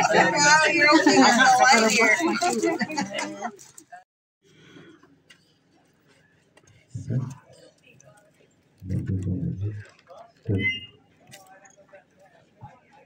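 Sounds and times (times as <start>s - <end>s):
people's voices: 0.0s - 4.0s, 5.8s - 13.0s
faint scattered sounds: 0.0s - 13.0s.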